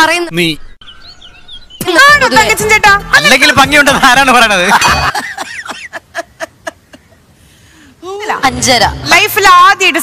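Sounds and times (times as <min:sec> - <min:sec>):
man laughing: 0:03.9 - 0:07.2.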